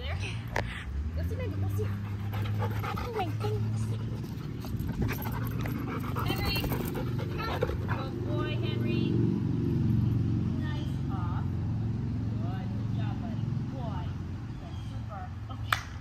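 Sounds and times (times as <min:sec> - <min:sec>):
dogs panting: 0:01.4 - 0:08.8.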